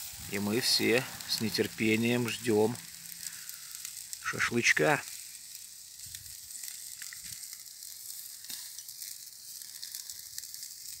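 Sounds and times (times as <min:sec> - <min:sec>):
meat sizzling over charcoal: 0:00.0 - 0:11.0.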